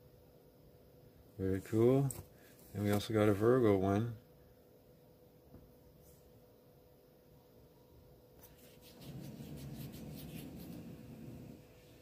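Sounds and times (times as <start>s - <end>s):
fingers rubbing: 8.4s - 11.6s.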